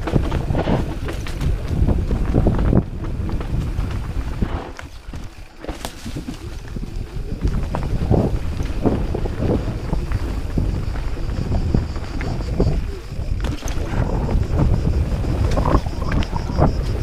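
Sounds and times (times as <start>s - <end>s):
bike knocks and rattles: 0.0s - 17.0s
bike tyre noise: 0.0s - 17.0s
wind buffeting microphone: 0.0s - 17.0s.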